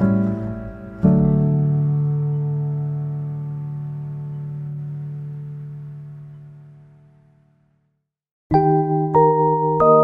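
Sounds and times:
piano chord ringing: 0.0s - 7.4s.

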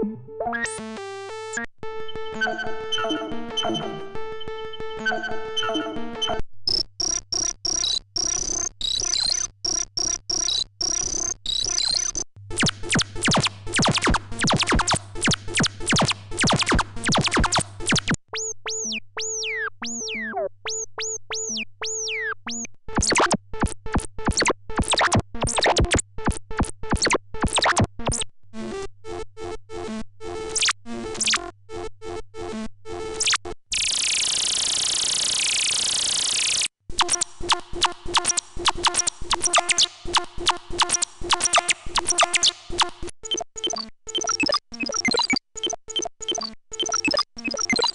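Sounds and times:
stuttering electronic synth tone: 33.2s - 45.4s.

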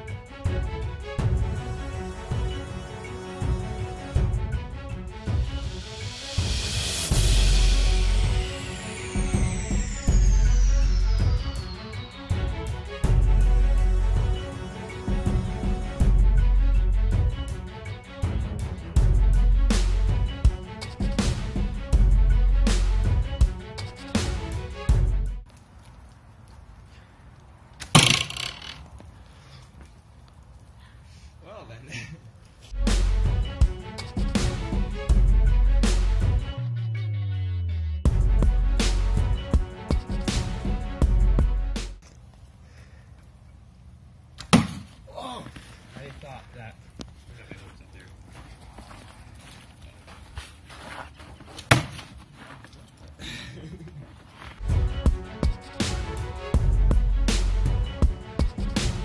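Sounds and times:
background string music: 0.0s - 25.5s, 32.7s - 42.0s, 54.6s - 59.0s
sharp arrow impact: 27.8s - 28.8s, 44.4s - 44.9s, 51.7s - 52.1s.

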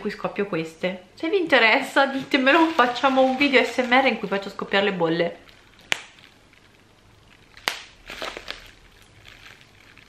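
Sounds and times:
plastic crackling: 1.9s - 10.0s
bubble wrap popping: 2.1s - 10.0s.

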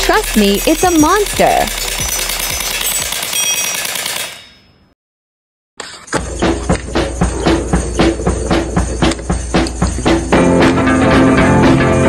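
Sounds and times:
gel blaster firing full-auto: 1.0s - 4.4s.

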